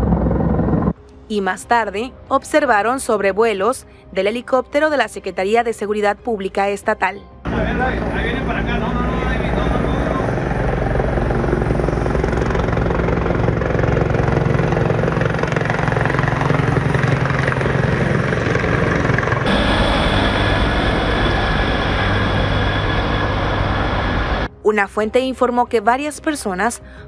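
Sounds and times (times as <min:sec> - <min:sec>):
helicopter rotor beating overhead: 0:00.0 - 0:01.0, 0:07.5 - 0:24.5.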